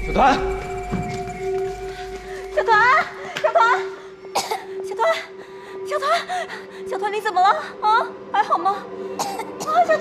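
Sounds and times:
boy coughing: 4.3 - 5.0, 9.2 - 10.0.

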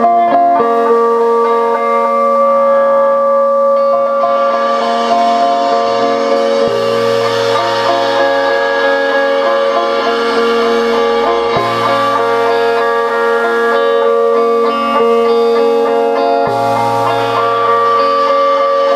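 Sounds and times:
ringing guitar chords: 0.0 - 18.9
deep bass note: 5.9 - 14.2, 16.5 - 18.2.

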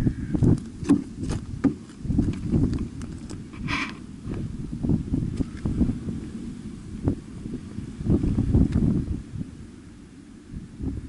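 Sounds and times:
wind rumble on microphone: 0.0 - 11.0
hissing scrape: 3.6 - 4.0.

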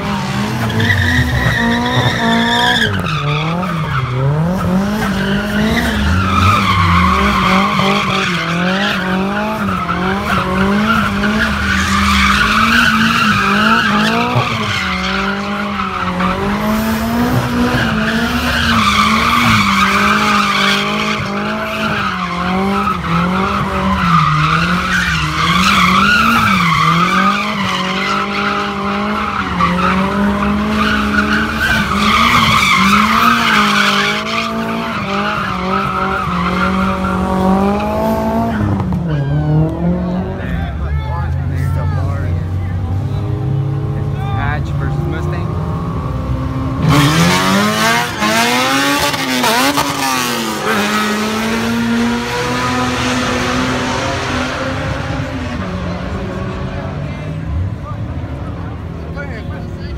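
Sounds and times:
tyre squeal: 0.0 - 39.6
car engine revving high: 0.0 - 59.9.

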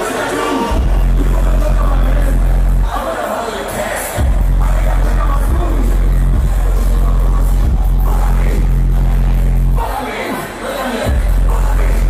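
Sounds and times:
hip hop vocals: 0.0 - 12.0
heavy bass beat: 0.6 - 2.9, 4.2 - 9.9, 11.1 - 12.0.

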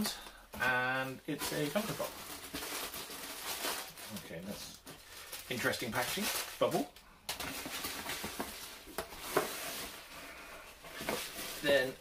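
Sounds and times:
bubble wrap rustling and crinkling: 1.0 - 12.0.

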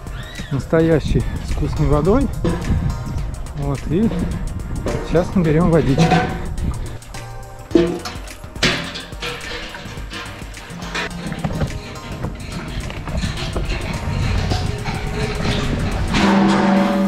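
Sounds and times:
background music with beat: 0.0 - 17.0.

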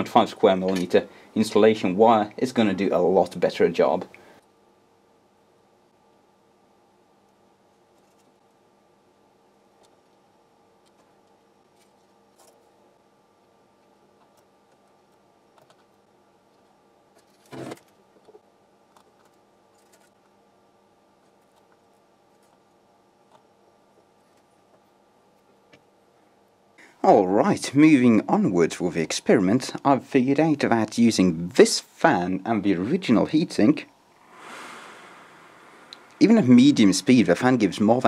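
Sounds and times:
faint steady hum: 0.0 - 38.0.

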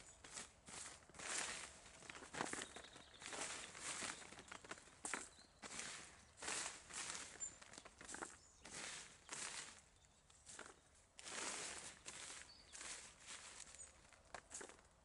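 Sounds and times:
plastic sheet rustling and crinkling: 0.0 - 15.0.

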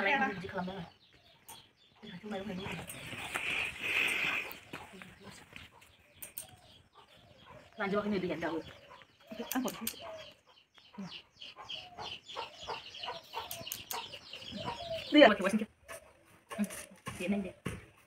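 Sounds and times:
chickens clucking: 1.4 - 17.3.

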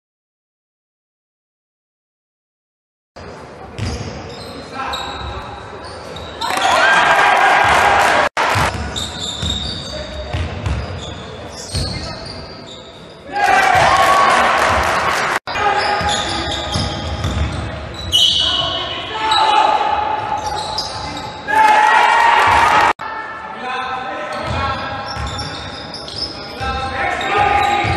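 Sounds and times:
basketball bouncing on court: 3.8 - 4.2, 8.4 - 12.1, 16.0 - 18.1
players and spectators shouting: 6.4 - 8.6, 13.3 - 16.6, 18.4 - 20.7, 21.4 - 23.5
crowd cheering: 6.4 - 8.7, 13.3 - 16.0, 21.5 - 23.1.

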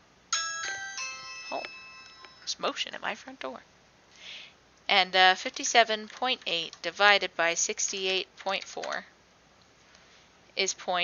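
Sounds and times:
electronic bell-like chime: 0.3 - 2.6.

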